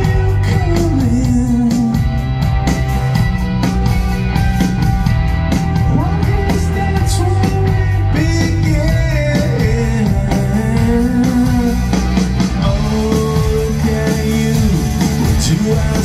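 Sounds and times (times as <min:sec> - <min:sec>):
rock band playing live: 0:00.0 - 0:16.0.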